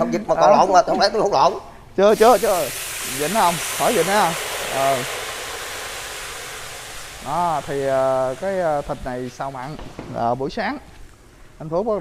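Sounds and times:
meat sizzling in a wok: 2.2 - 10.0.

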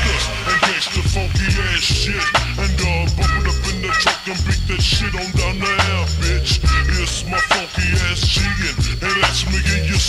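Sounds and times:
person rapping: 0.0 - 10.0
slowed-down hip hop beat: 0.0 - 10.0.

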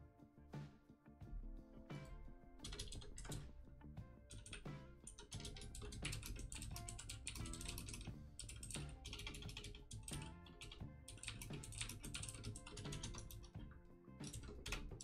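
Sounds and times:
quiet background music: 0.0 - 15.0.

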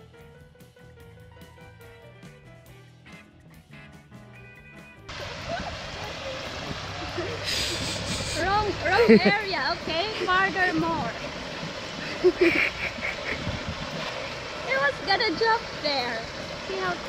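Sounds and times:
background music: 0.0 - 5.2
water rushing over spillway: 5.1 - 17.0
voices: 5.2 - 11.3, 14.6 - 17.0.

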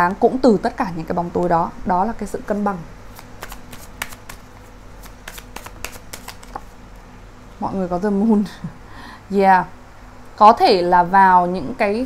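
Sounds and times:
cards being shuffled: 3.1 - 6.7.

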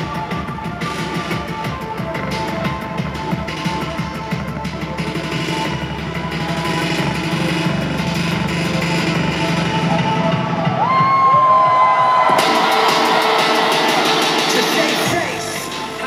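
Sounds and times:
electronic beat through speakers: 0.0 - 16.0
crowd cheering: 8.6 - 16.0.

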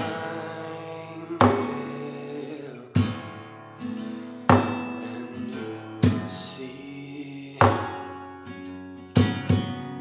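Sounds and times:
acoustic guitar strummed: 0.0 - 10.0.

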